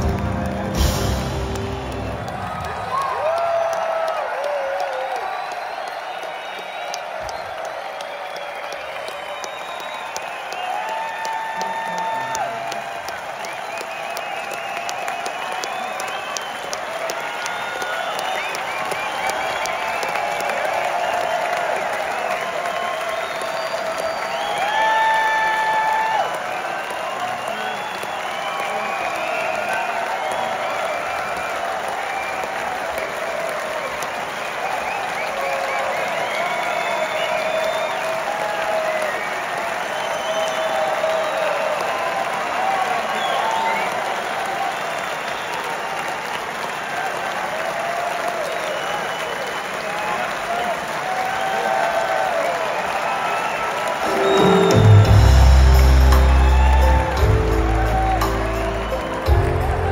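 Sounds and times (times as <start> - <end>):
audience applauding and cheering: 0.0 - 59.9
shouts and whoops: 2.0 - 59.9.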